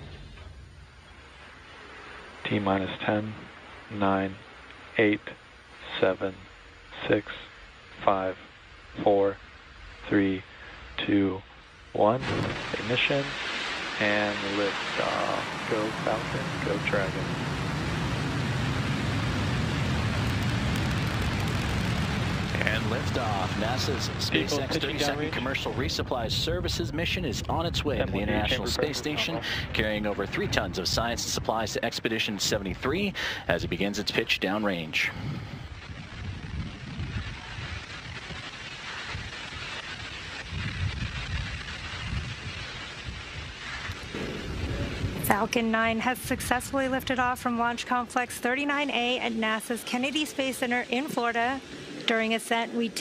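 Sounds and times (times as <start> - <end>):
rocket engines rumbling: 0.0 - 53.0.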